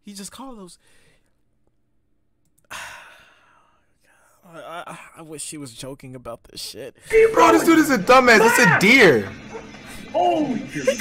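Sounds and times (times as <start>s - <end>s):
man sighing: 2.7s - 3.7s.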